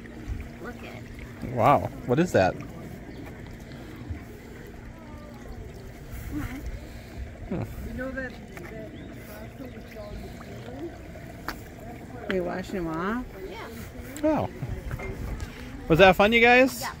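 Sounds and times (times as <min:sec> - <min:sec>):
water flowing along wooden trough: 0:00.0 - 0:17.0
children's voices murmuring: 0:02.8 - 0:15.9.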